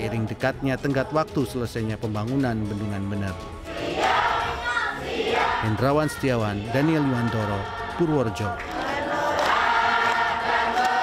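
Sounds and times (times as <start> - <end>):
women chanting a prayer: 3.7 - 11.0.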